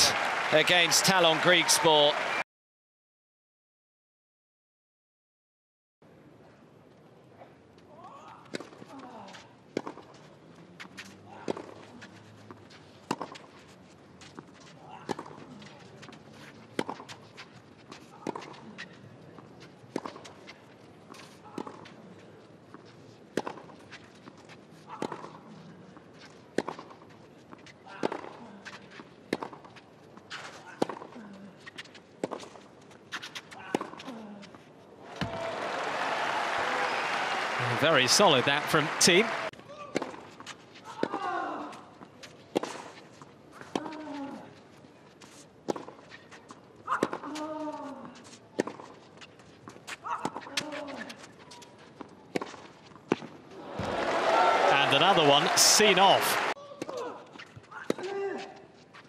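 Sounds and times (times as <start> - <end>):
crowd applause: 0.0 - 2.4, 35.1 - 39.5, 53.6 - 56.6.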